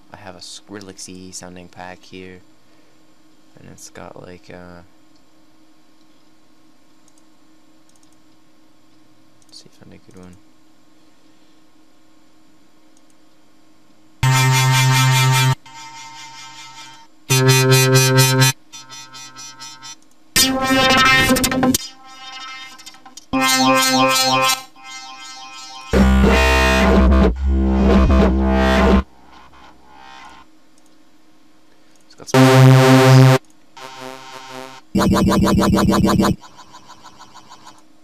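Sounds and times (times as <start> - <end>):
synth bass notes: 14.2 - 16.0, 16.6 - 22.6, 23.3 - 30.5, 32.4 - 36.5.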